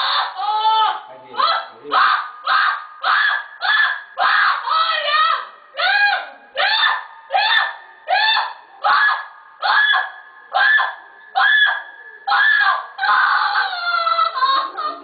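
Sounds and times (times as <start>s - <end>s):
person wailing high-pitched: 12.6s - 15.0s.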